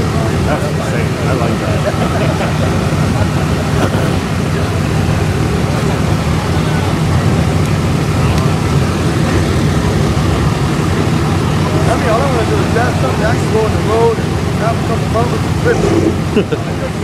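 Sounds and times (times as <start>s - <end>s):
truck engine rumbling: 0.0s - 17.0s.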